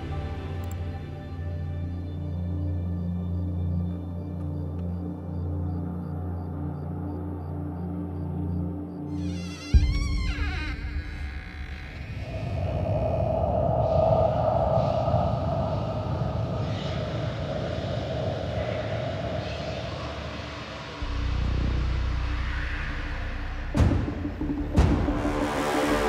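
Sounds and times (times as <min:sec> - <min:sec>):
low rumbling drone: 0:00.0 - 0:26.0.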